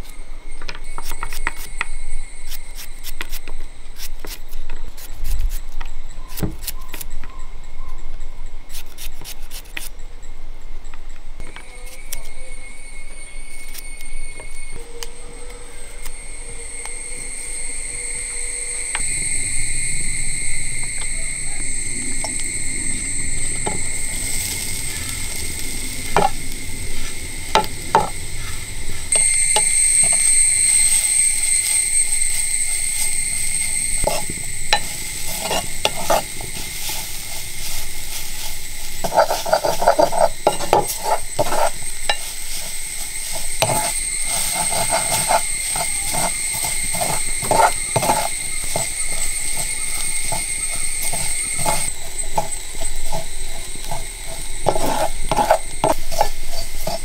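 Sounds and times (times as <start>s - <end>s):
light sizzling: 13.4s - 57.0s
spatula scraping metal pan: 23.4s - 25.3s, 25.9s - 28.2s, 28.9s - 57.0s.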